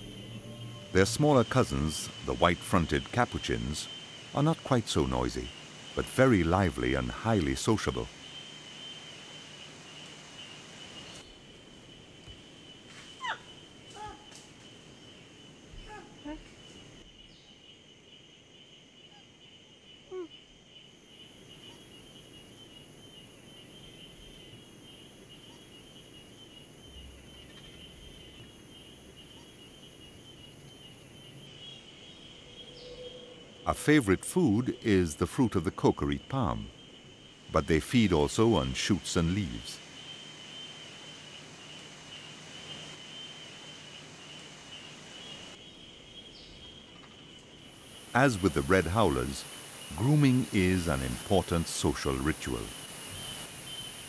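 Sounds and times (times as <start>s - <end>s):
high-pitched insect buzz: 0.0s - 12.0s, 47.6s - 54.0s
high insect drone: 0.0s - 54.0s.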